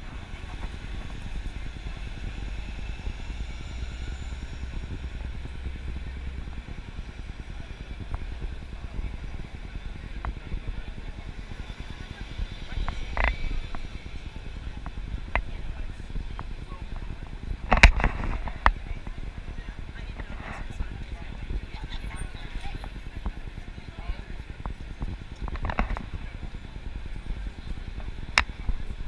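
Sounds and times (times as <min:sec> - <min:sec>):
crowd chatter: 0:00.0 - 0:29.0
traffic rumble: 0:00.0 - 0:29.0.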